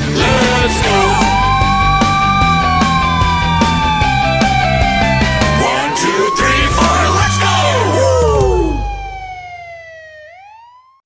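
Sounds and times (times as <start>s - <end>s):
song bass: 0.0s - 10.6s
cartoon police siren: 0.3s - 11.0s.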